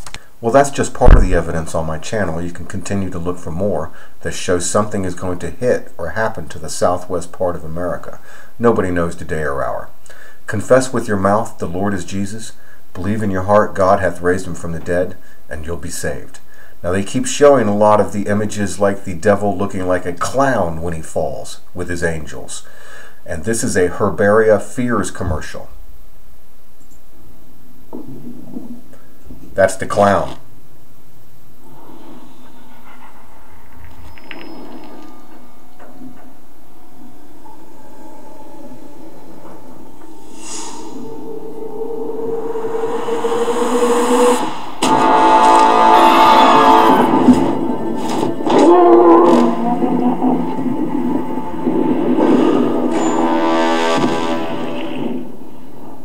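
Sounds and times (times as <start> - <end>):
steady background hiss: 0.0 - 56.0
rumbling rushing sound effect: 1.0 - 1.6, 37.4 - 48.0, 50.2 - 55.4
low pitched sound: 1.0 - 1.8, 35.3 - 55.5.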